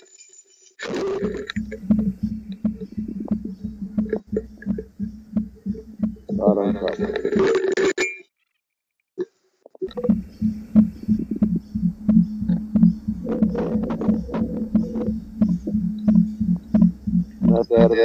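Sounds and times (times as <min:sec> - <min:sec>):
sharp clicks: 0:00.8 - 0:07.8, 0:09.8 - 0:17.8
low thumps in pipe: 0:01.0 - 0:07.7, 0:09.8 - 0:18.0.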